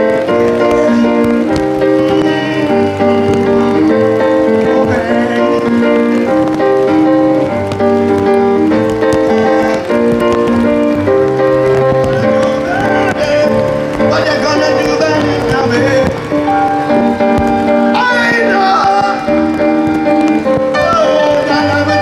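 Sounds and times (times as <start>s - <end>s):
reggae band playing: 0.0s - 22.0s
steady bass line: 0.0s - 22.0s
sustained keyboard chords: 0.0s - 22.0s.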